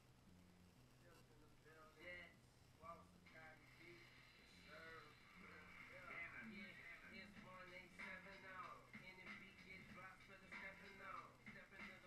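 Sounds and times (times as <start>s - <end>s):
faint voices: 1.0s - 12.0s.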